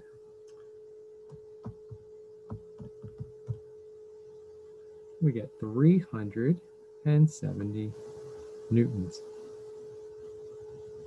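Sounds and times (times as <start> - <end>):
faint electrical hum: 0.0 - 11.0
soft low taps: 1.3 - 3.7.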